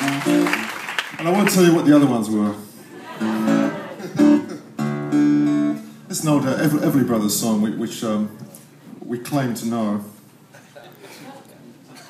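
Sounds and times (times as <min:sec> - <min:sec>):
acoustic guitar chords strummed: 0:03.2 - 0:06.0.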